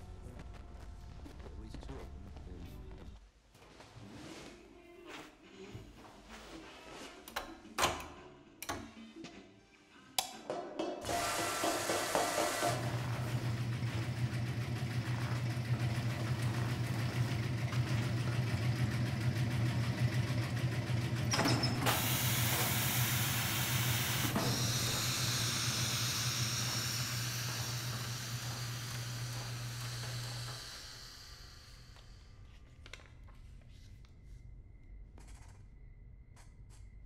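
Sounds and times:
laundry pressing machine humming: 11.0s - 32.2s
high steam hiss: 21.9s - 32.1s.

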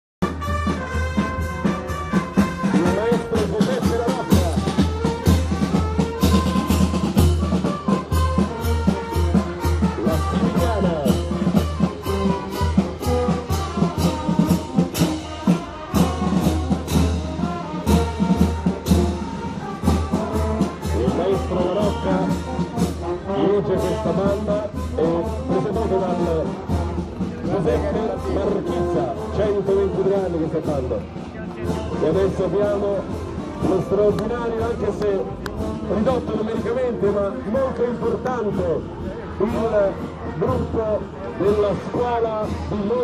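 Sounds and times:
brass band playing: 0.2s - 43.0s
steady drum beat: 0.2s - 43.0s.

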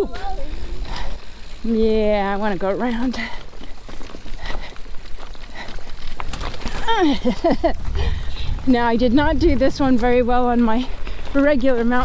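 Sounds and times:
bike tyres on rough ground: 0.0s - 12.0s
bike knocks and rattles: 2.4s - 7.9s.

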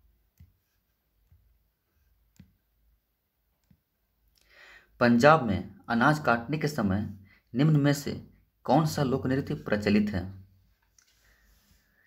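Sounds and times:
man's voice: 5.0s - 10.4s.

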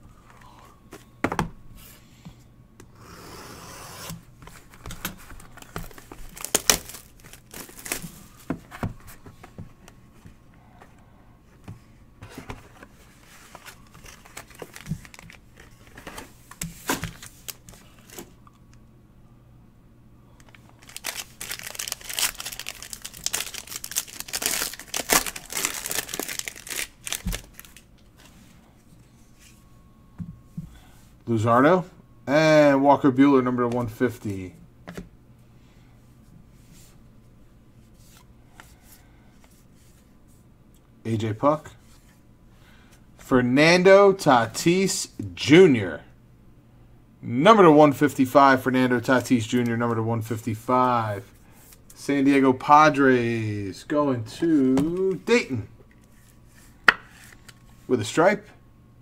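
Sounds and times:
plastic wrapping crinkling: 5.1s - 8.2s, 13.6s - 16.0s, 20.4s - 28.0s.

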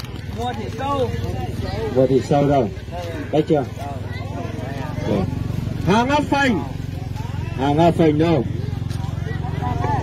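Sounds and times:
people calling out: 2.7s - 10.0s.

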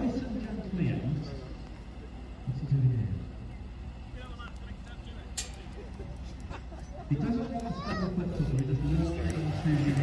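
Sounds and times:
distant car engine running: 0.0s - 10.0s
faint crowd voices: 0.0s - 10.0s.

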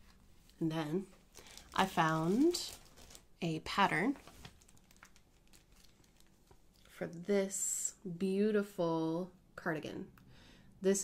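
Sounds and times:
plastic sleeve crinkling: 1.1s - 6.9s.

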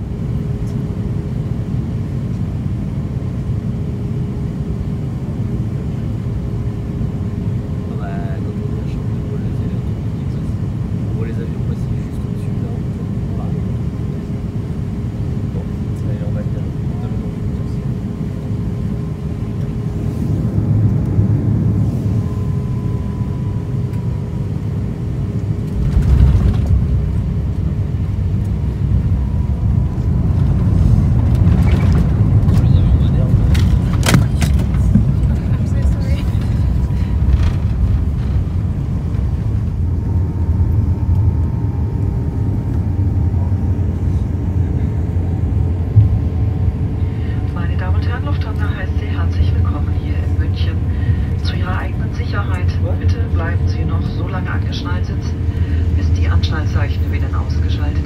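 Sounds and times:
aircraft cabin rumble: 0.0s - 58.0s.

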